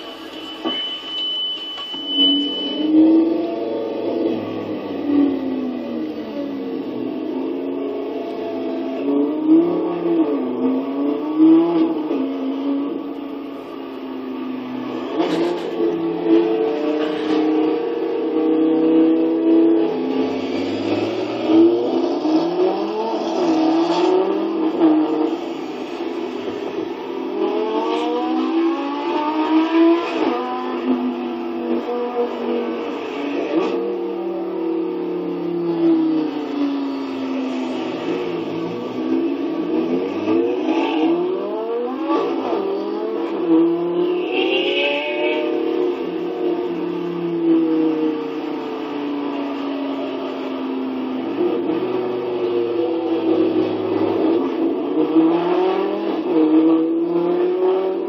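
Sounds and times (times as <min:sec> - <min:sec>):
car engines accelerating hard: 0:02.8 - 0:58.0.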